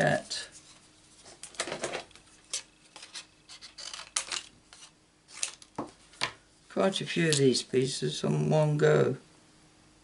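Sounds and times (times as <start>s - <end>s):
paper rustling: 0.6s - 5.9s.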